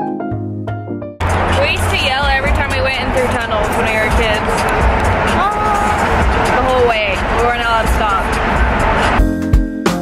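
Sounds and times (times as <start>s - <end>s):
background music with steady beat: 0.0s - 10.0s
wind and road noise in car: 1.2s - 9.3s
person shouting: 5.3s - 6.1s.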